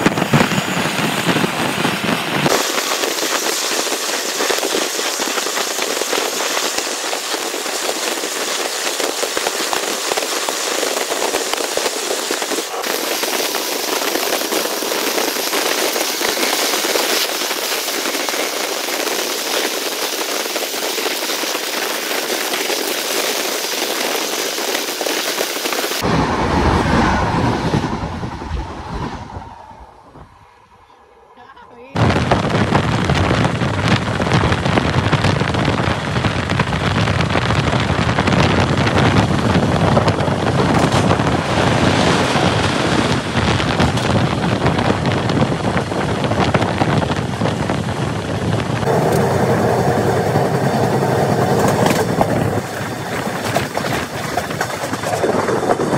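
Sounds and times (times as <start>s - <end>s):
heavy train rumble: 0.0s - 22.7s, 25.6s - 55.9s
moving train rushing and crackling: 0.0s - 55.9s.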